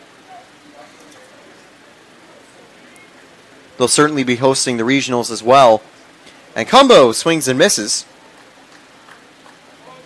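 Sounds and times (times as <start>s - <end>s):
low ballpark background haze: 0.0s - 10.0s.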